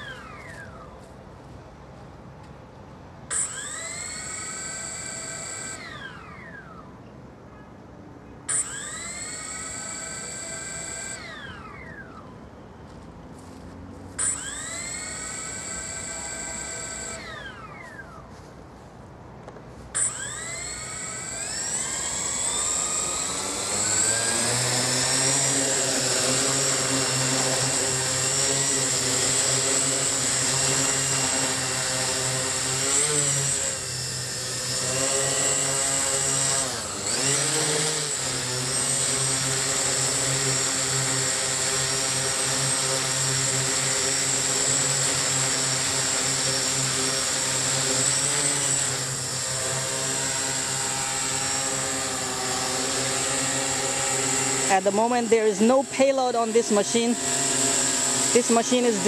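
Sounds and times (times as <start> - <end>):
drone propellers buzzing: 3.3 - 6.9, 8.5 - 12.4, 13.4 - 18.4, 19.8 - 59.0.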